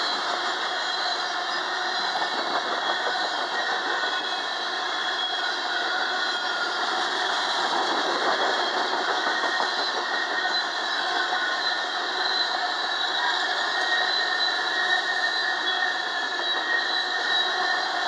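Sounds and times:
train wheels rumbling on rails: 0.0s - 18.0s.

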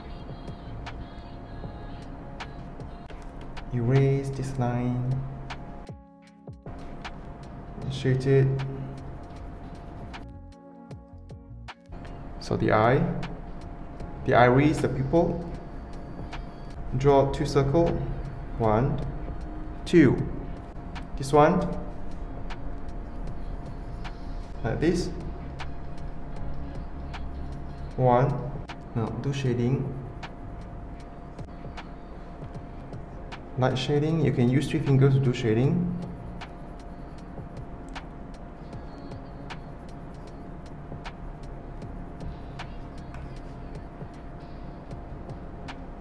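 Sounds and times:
background hum: 0.0s - 46.0s
low background rumble: 0.0s - 46.0s.

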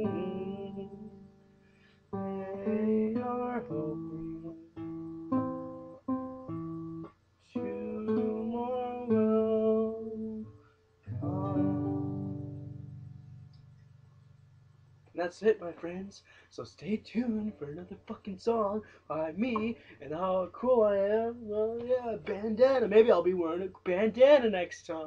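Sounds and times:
classical guitar chords: 0.0s - 13.8s.

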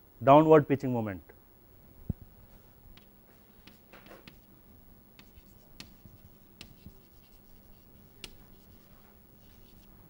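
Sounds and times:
chalk tapping on board: 3.0s - 4.5s, 5.2s - 9.9s
chalk scratching on blackboard: 3.3s - 4.5s, 5.2s - 10.0s.

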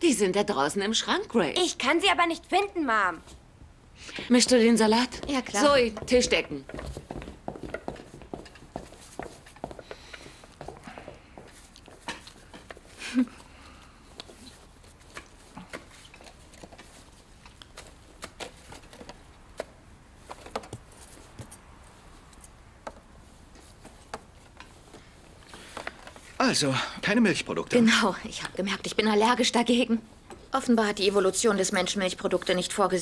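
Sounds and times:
soft footsteps: 3.1s - 33.0s.

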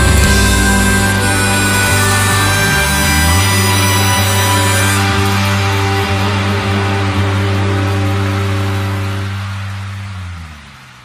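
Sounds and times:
rock band chord ringing: 0.0s - 10.0s
noisy wash: 0.0s - 11.0s.

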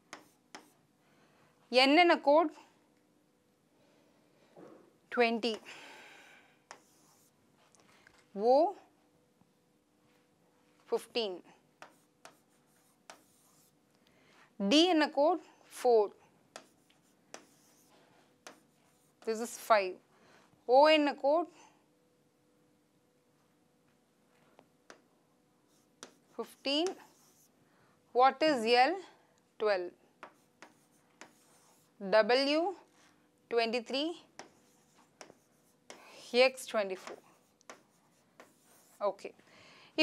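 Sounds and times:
stylus scratching on a tablet: 0.0s - 0.8s, 6.7s - 7.4s, 11.8s - 13.8s, 16.6s - 19.5s, 25.7s - 27.5s, 30.2s - 32.0s, 34.0s - 39.3s
stylus tapping on tablet: 30.2s - 31.4s, 34.4s - 36.1s.

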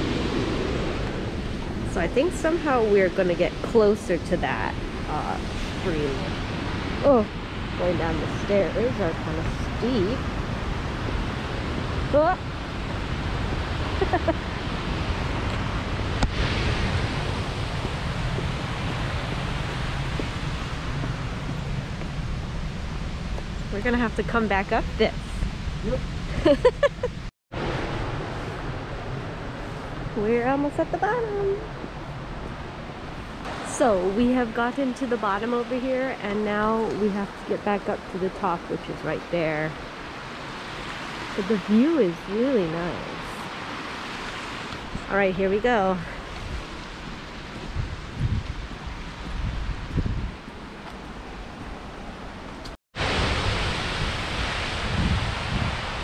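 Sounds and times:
stream water rushing: 0.0s - 21.4s, 36.9s - 56.0s
wind buffeting microphone: 0.0s - 56.0s.

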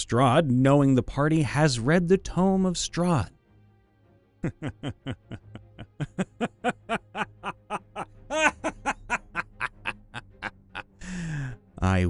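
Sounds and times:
man laughing: 4.4s - 11.4s.

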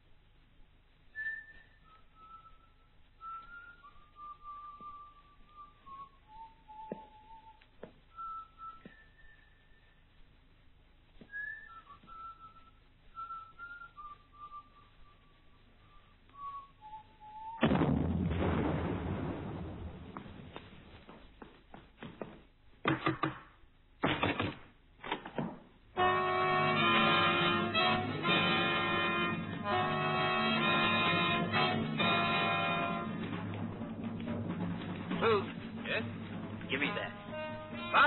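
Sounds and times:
person whistling a slow tune: 1.2s - 10.0s, 11.2s - 17.6s
loud bang: 17.6s - 20.5s.

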